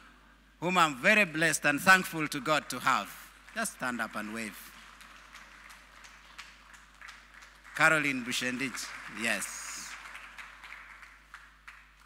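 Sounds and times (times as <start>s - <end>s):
scattered claps: 3.1s - 12.0s.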